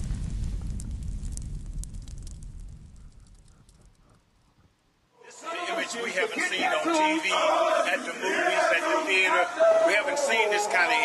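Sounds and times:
deep fire rumble: 0.0s - 4.2s
fire crackling: 0.0s - 11.0s.

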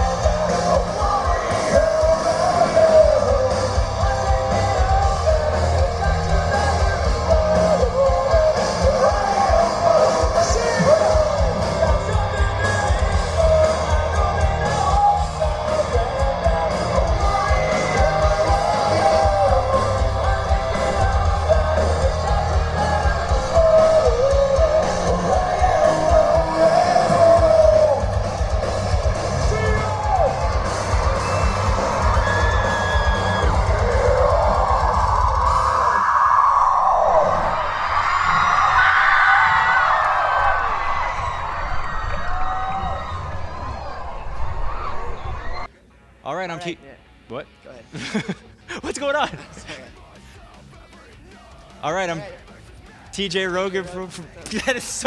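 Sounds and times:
person yelling singing: 0.0s - 36.5s, 49.5s - 53.4s
distorted electric guitar: 0.0s - 47.9s
drums: 0.0s - 55.0s.

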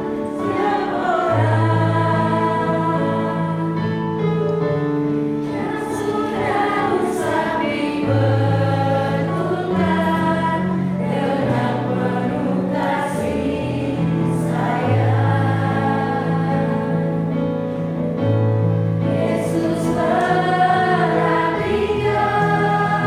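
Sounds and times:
group singing a hymn: 0.0s - 18.1s, 18.7s - 23.0s.

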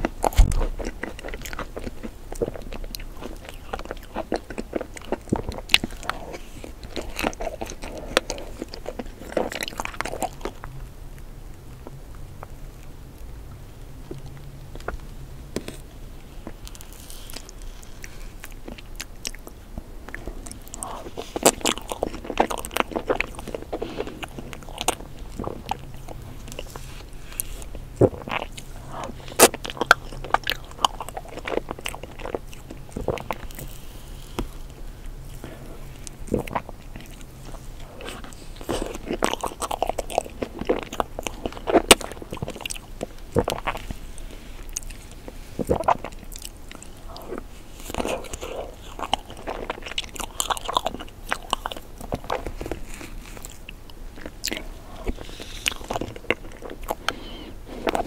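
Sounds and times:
chewing with mouth clicks: 0.0s - 13.3s, 14.0s - 58.0s.

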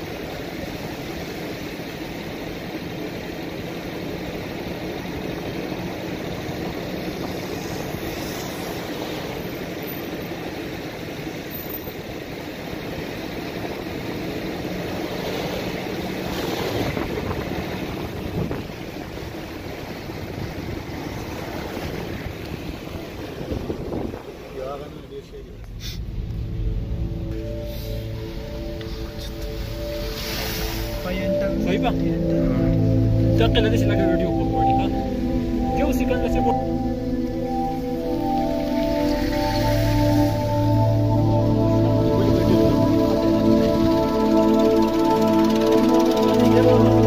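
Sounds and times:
car engine and tyre noise: 0.0s - 47.0s.

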